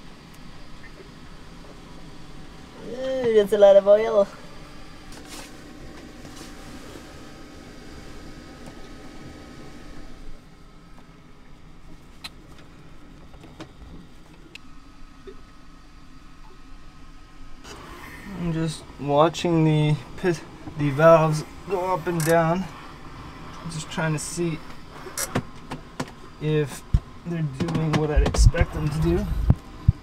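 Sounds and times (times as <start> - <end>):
steady low hum: 0.0 - 30.0
man speaking: 18.3 - 22.7, 23.6 - 24.6, 26.4 - 29.4.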